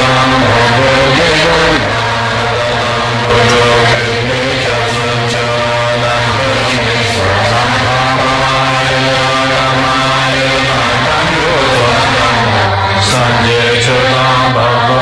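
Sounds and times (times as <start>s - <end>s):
prayer chant sung slowly: 0.0s - 15.0s
steady low drone: 0.0s - 15.0s.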